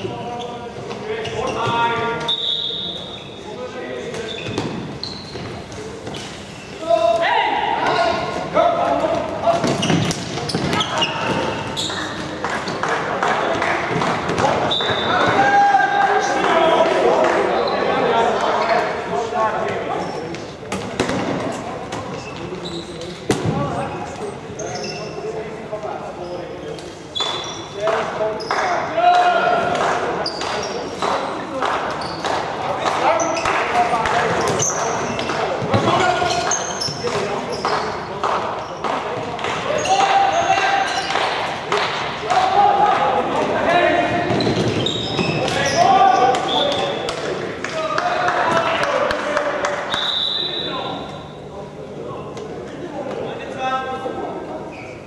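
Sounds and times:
players shouting: 14.4 - 18.8.

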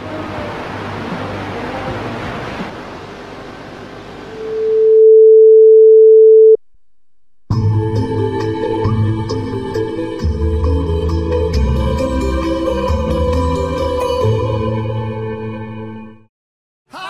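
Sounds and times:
test-card tone: 4.3 - 6.6
music: 7.5 - 16.3.

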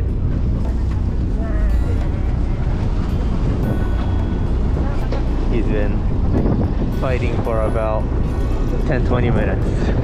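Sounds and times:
choppy sea against boat: 0.0 - 10.0
wind rumble: 0.0 - 10.0.

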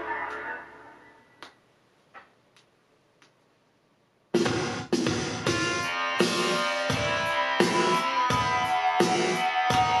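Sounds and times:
music track: 4.4 - 10.0.

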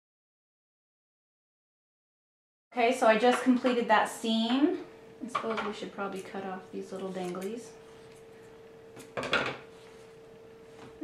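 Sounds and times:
faint steady hum: 2.7 - 11.0.

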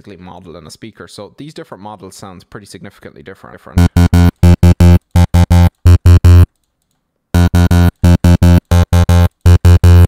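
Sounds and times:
distorted synth bass note: 3.8 - 6.5, 7.4 - 10.0.

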